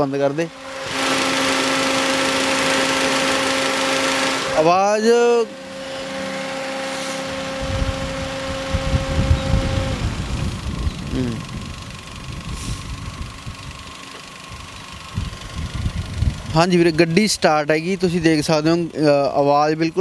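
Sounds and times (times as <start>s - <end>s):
car engine idling quietly: 0.0s - 20.0s
low rumbling on microphone: 6.9s - 13.9s, 14.6s - 17.0s.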